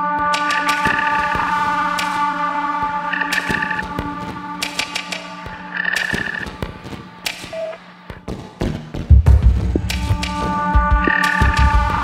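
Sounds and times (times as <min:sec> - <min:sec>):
glitchy electronic music: 0:00.0 - 0:08.7, 0:09.3 - 0:12.0.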